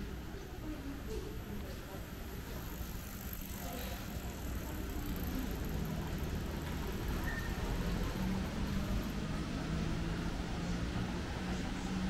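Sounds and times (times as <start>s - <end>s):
low street rumble: 0.0s - 12.0s.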